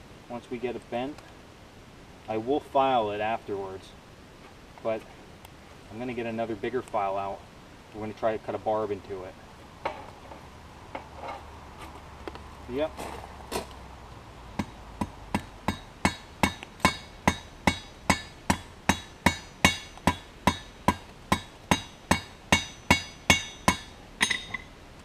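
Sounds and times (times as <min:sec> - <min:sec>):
hammer striking steel on anvil: 0:15.3 - 0:24.7.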